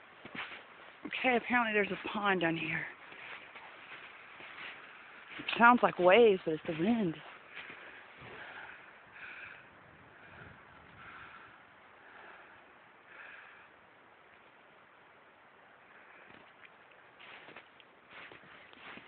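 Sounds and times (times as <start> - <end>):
faint wind through fir trees: 0.0 - 19.0.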